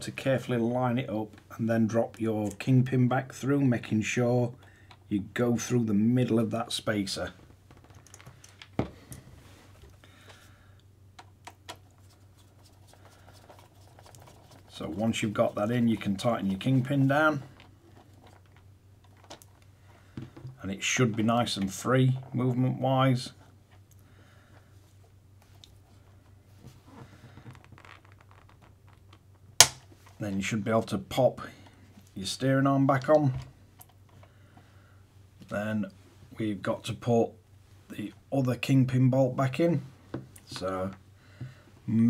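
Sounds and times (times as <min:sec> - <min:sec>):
faint steady low hum: 0:00.0 - 0:42.0
hands handling small parts: 0:07.7 - 0:10.4, 0:11.2 - 0:21.3.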